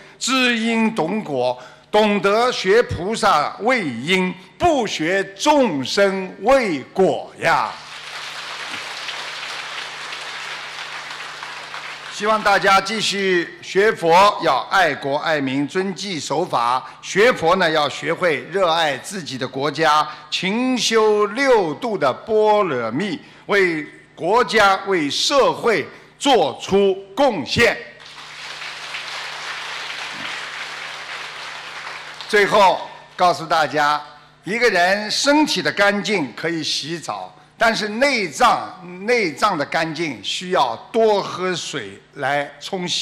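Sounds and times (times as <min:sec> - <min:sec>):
faint steady hum: 0:00.0 - 0:43.0
audience applauding: 0:07.6 - 0:13.0, 0:28.0 - 0:32.6.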